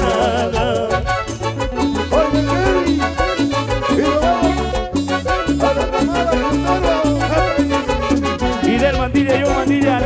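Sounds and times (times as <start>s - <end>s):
melody line: 0.0s - 9.8s
electric bass line: 0.0s - 10.0s.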